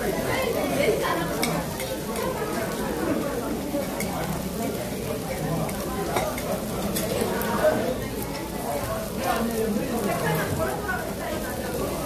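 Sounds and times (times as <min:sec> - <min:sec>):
meat sizzling on grill pan: 0:00.0 - 0:12.0.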